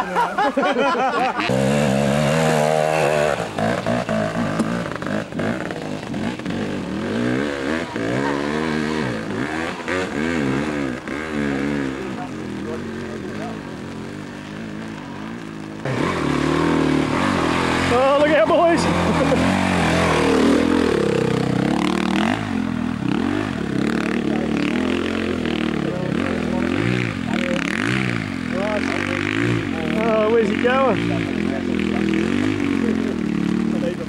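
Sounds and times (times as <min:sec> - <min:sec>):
dirt bike engines revving: 0:00.0 - 0:34.0.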